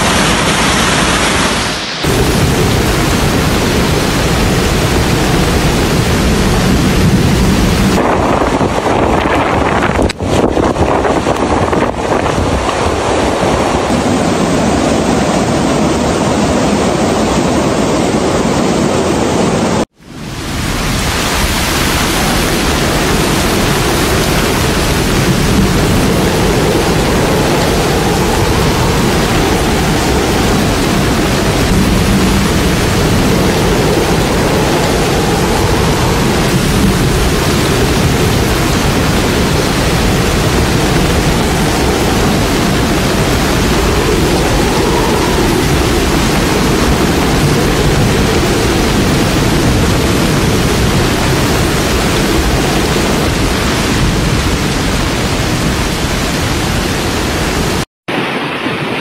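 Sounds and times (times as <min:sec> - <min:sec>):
floodwater rushing: 0:00.0 - 0:59.0.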